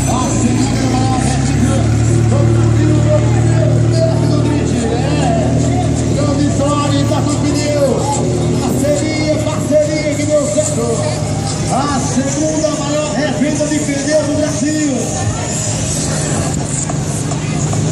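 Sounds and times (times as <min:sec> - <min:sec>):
truck engines running at low revs: 0:00.0 - 0:17.9
voices: 0:00.0 - 0:17.9.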